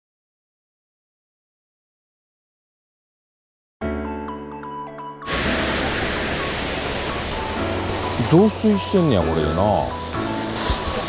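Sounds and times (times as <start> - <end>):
light background music: 3.8 - 11.0
musical jingle: 4.5 - 11.0
waterfall rushing: 5.2 - 11.0.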